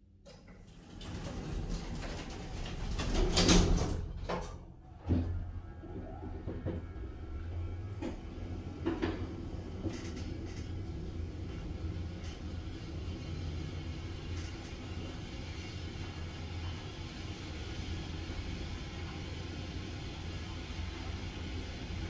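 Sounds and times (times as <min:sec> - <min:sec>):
lift car low rumble: 0:00.0 - 0:22.0.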